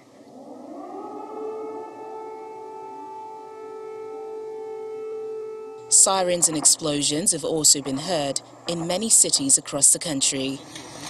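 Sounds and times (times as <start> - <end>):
air-raid siren wailing: 0.0 - 9.6.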